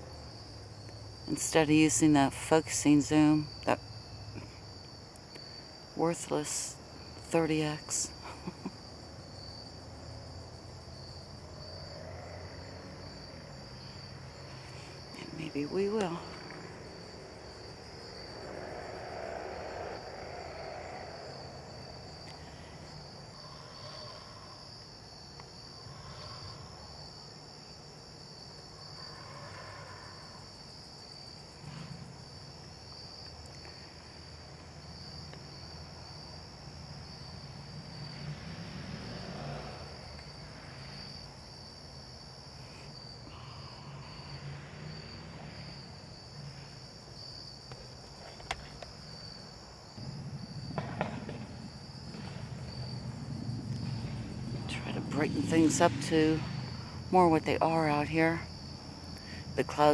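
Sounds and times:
crickets chirping: 0.0s - 59.9s.

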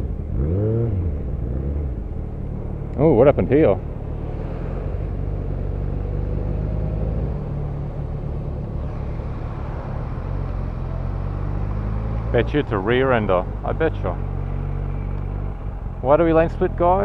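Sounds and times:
traffic engine drone: 0.0s - 17.0s
fire truck engine running: 7.7s - 12.0s.

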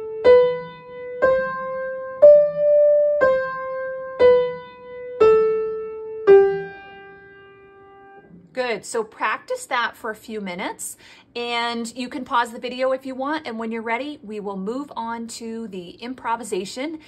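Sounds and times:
upright piano playing a scale: 0.0s - 8.3s.

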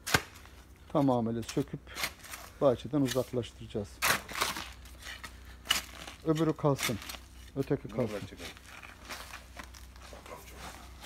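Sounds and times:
blade chopping plant stem: 0.0s - 0.5s.

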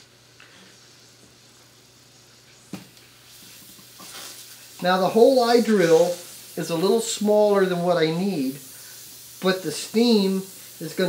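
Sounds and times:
steam hissing: 0.0s - 11.0s.

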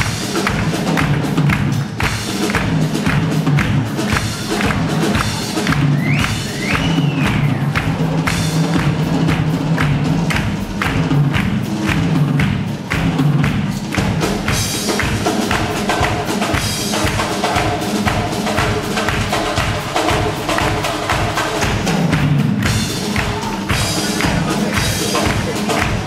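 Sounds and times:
hand-clapping rhythm: 0.0s - 26.0s
live band playing: 0.0s - 26.0s.

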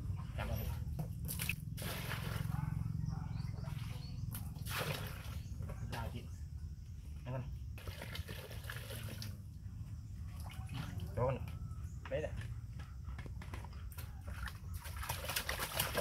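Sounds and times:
steady low hum: 0.0s - 14.3s
water pouring into plastic basin: 7.8s - 9.3s, 14.8s - 16.0s.

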